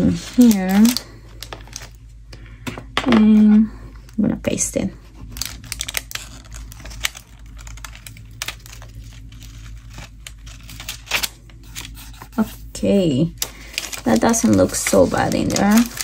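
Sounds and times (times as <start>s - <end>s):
paper crinkling: 0.0s - 2.1s, 3.9s - 16.0s
paper ripping: 5.2s - 12.6s, 13.6s - 16.0s.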